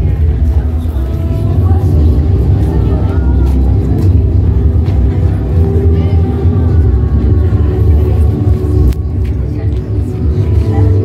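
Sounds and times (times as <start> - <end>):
low crowd rumble: 0.0 - 11.0
music: 0.0 - 11.0
people's voices: 0.0 - 11.0.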